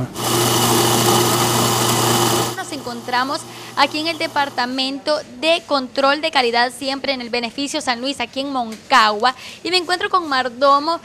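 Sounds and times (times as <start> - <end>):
coffee grinder grinding beans: 0.0 - 4.7.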